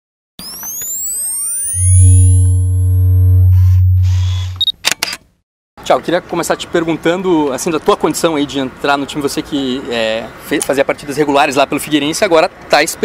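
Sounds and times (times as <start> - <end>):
higher tones: 0.4 - 4.7
synthesized rising sweeps: 0.4 - 4.7.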